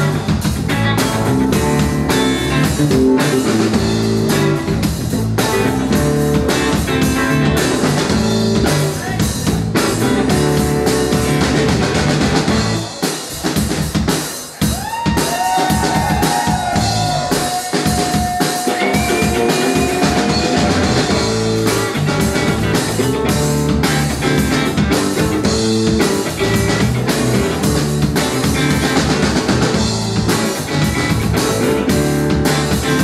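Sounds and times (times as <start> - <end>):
electric guitar: 0.0 - 12.9, 18.0 - 33.0
electric bass: 0.0 - 14.0, 15.8 - 17.5, 18.8 - 33.0
drum kit: 0.0 - 33.0.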